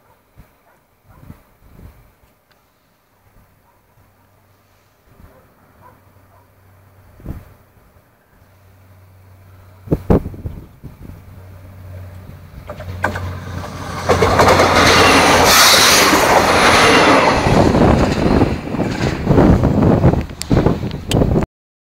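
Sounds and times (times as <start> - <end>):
railbus engine hum: 2.1 - 21.4
train wheel noise: 10.7 - 21.4
wheels clicking over rail joints: 11.2 - 21.2.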